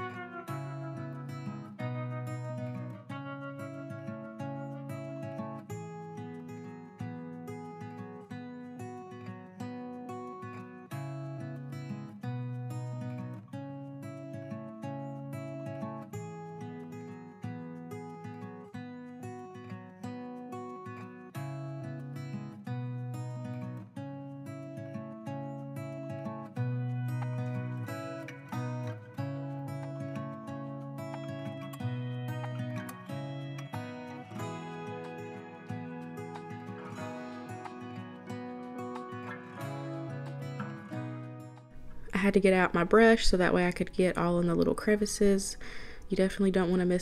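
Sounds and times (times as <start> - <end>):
acoustic guitar playing: 0.0 - 47.0.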